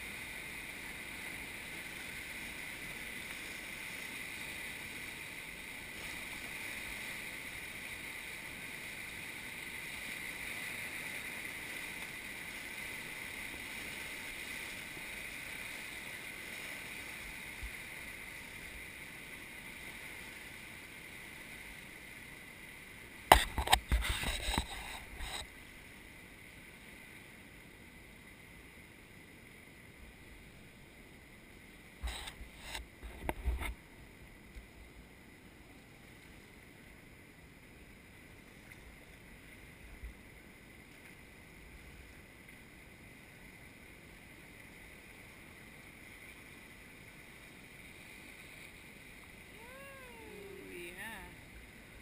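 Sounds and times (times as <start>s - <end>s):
river water rushing: 0.0s - 52.0s.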